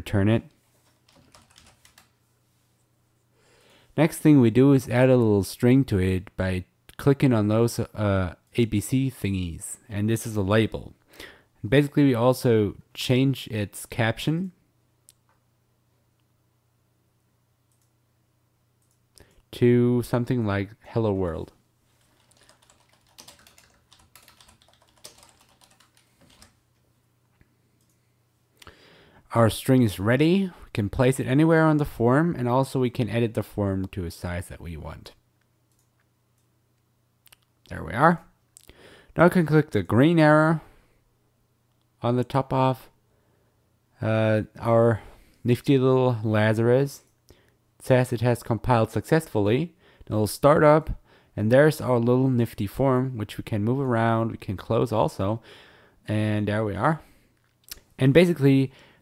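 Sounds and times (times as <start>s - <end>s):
computer keyboard keystrokes: 0.8s - 2.1s, 22.2s - 26.6s.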